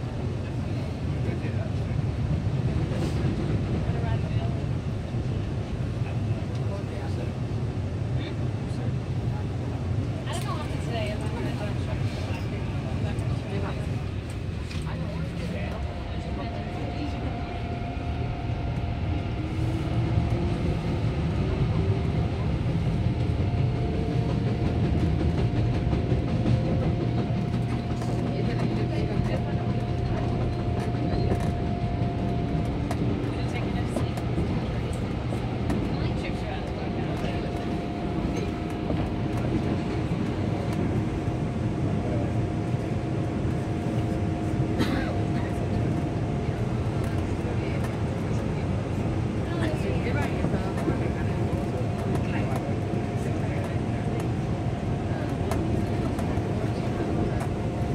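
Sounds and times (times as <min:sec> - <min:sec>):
train wheels rumbling on rails: 0:00.0 - 0:57.9.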